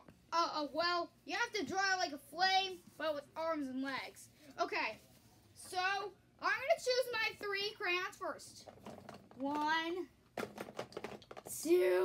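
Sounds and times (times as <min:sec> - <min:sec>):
child talking: 0:00.0 - 0:05.0, 0:05.6 - 0:08.7, 0:09.4 - 0:10.2, 0:11.5 - 0:12.0.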